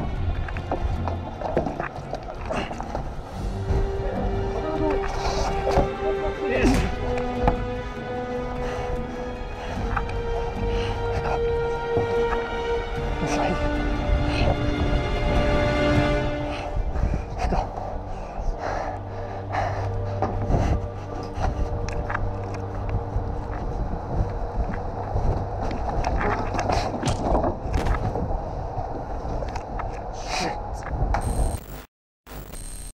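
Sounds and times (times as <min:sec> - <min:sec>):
running footsteps: 0:00.0 - 0:28.2
heavy breathing: 0:02.4 - 0:27.0.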